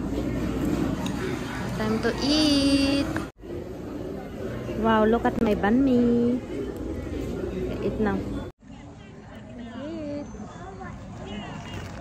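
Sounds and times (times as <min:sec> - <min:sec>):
faint distant chatter: 0:00.0 - 0:12.0.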